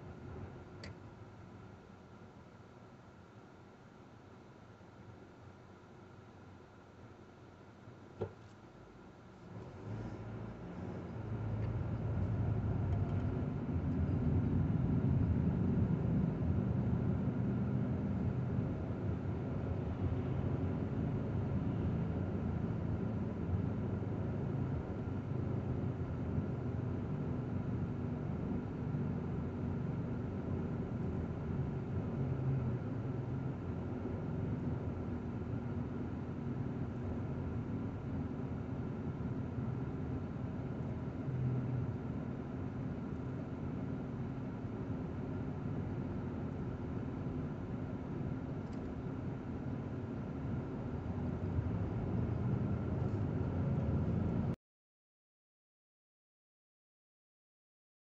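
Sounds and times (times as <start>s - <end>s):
car cabin engine and tyre hum: 0.0s - 54.6s.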